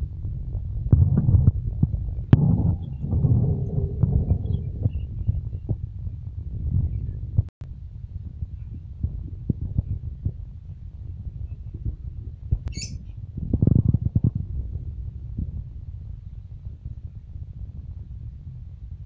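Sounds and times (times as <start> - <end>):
steady low rumble: 0.0 - 19.0
parrot chirp: 12.7 - 13.0.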